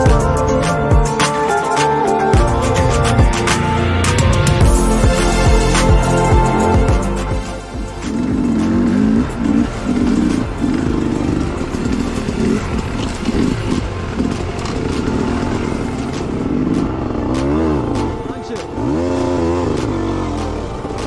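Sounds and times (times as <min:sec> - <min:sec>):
dirt bike engines running: 0:00.0 - 0:21.0.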